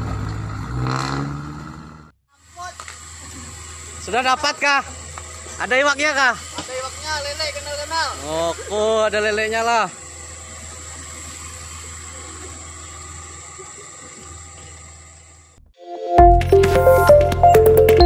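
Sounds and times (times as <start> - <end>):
electronic logo jingle: 15.8 - 18.0.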